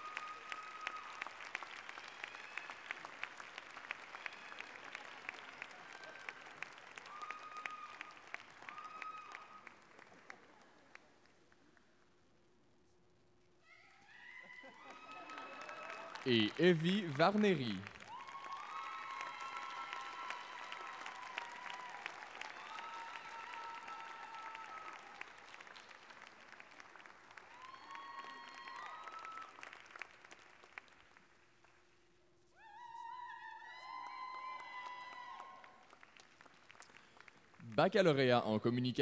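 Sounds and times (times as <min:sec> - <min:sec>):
audience applauding: 0:00.0 - 0:11.3, 0:14.6 - 0:31.8, 0:33.4 - 0:38.6.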